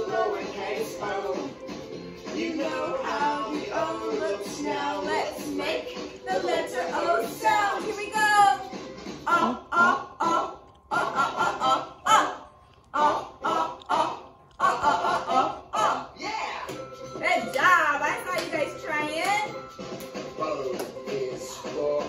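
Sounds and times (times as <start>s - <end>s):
children's song with man singing: 0.0s - 8.5s, 9.2s - 16.9s, 20.3s - 22.0s.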